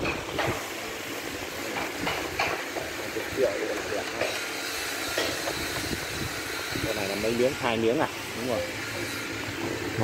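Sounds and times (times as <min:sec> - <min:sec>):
wood being sanded: 0:03.6 - 0:09.4.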